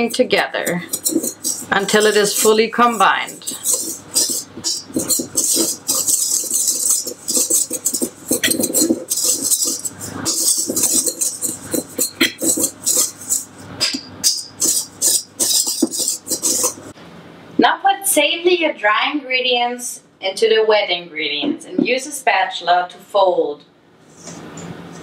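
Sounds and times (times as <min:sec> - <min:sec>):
whisk scraping metal bowl: 0:00.0 - 0:17.0.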